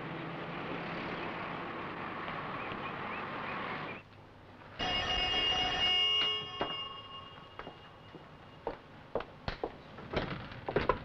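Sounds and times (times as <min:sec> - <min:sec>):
street noise: 0:00.0 - 0:11.0
telephone bell ringing: 0:04.8 - 0:08.7.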